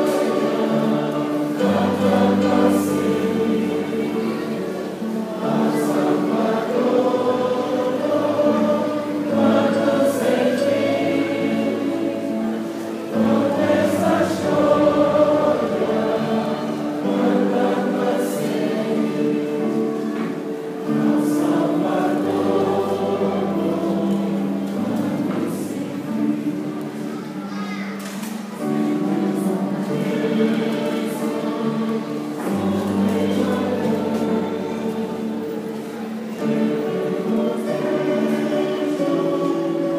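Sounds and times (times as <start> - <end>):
church choir singing a hymn: 0.0 - 39.9.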